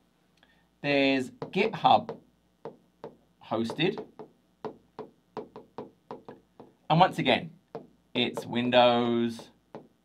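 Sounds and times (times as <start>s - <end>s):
stylus tapping on glass: 1.4s - 6.8s, 7.7s - 8.8s, 9.7s - 10.0s.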